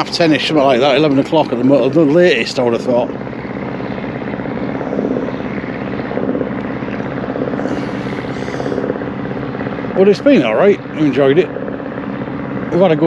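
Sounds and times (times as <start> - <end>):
engine running steadily: 0.0 - 13.0.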